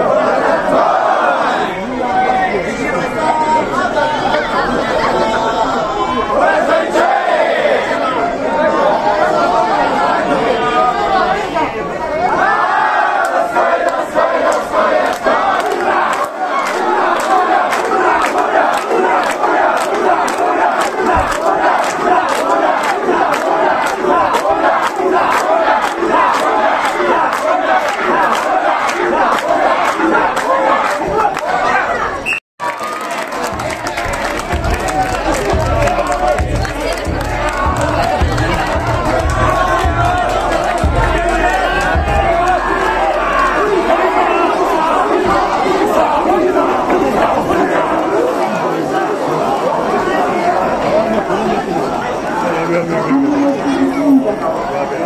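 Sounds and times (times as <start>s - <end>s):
crowd shouting together: 0.0s - 55.0s
rhythmic hand clapping: 13.1s - 31.7s, 32.6s - 48.1s.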